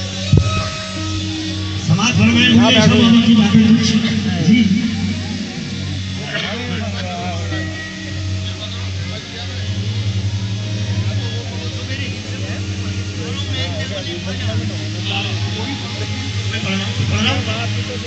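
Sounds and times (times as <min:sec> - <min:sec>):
sustained low drone: 0:00.0 - 0:18.0.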